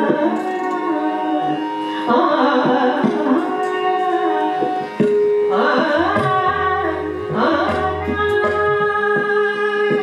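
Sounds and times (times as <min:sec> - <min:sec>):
woman singing classical vocal: 0:00.0 - 0:04.9, 0:05.5 - 0:10.0
tabla drumming: 0:00.0 - 0:10.0
harmonium held note: 0:00.3 - 0:10.0.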